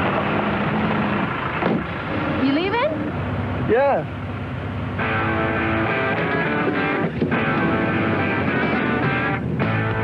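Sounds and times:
vehicle engine running: 0.0s - 10.0s.

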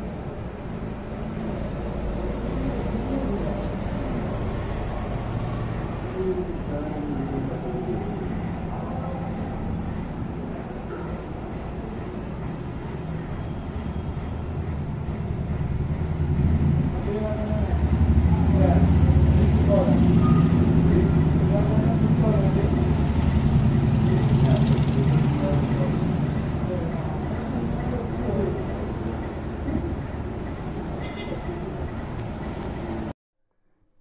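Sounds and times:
vehicle engine running: 0.0s - 30.9s
faint indistinct voices: 2.1s - 13.9s.

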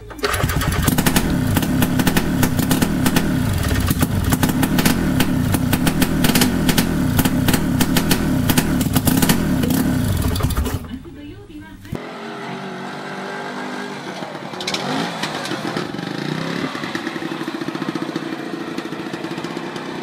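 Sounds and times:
small engine revving: 0.2s - 10.8s, 12.0s - 20.0s.

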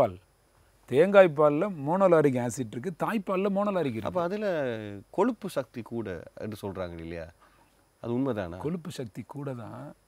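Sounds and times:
man talking: 0.0s - 0.2s, 0.9s - 7.4s, 8.0s - 10.0s.

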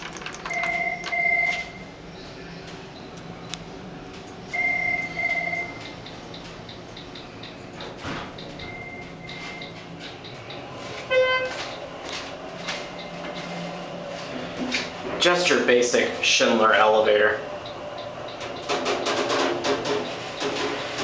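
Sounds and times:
steady low hum: 0.0s - 21.0s
elevator electronic beeps: 0.5s - 14.0s, 17.4s - 18.7s, 19.9s - 21.0s
buzzy beep: 4.5s - 5.9s.

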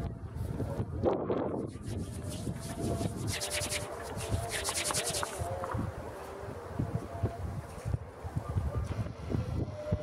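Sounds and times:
low wind rumble: 0.0s - 10.0s.

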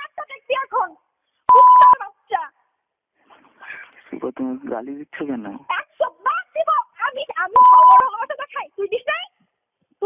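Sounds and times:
electronic beep: 1.5s - 2.0s, 7.6s - 8.1s
phone call speech: 7.3s - 8.4s.

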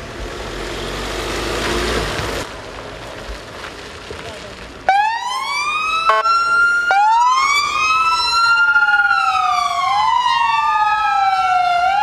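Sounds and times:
police sirens wailing: 4.9s - 12.0s.

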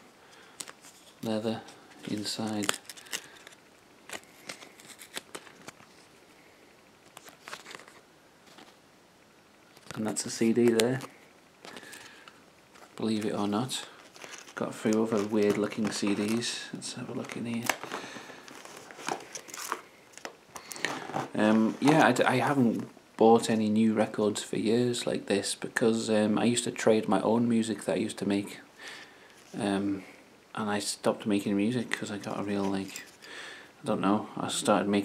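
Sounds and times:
packaging rustling: 0.5s - 6.1s, 7.0s - 8.8s, 9.7s - 22.2s
plastic cases clicking and rustling: 14.0s - 16.4s.

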